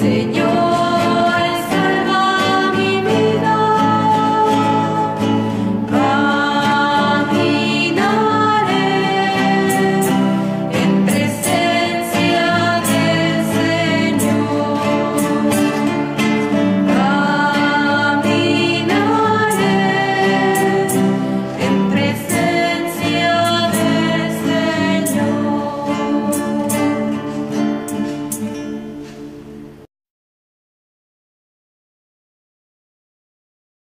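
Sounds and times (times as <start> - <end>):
women singing together: 0.0 - 28.0
strummed acoustic guitars: 0.0 - 29.9.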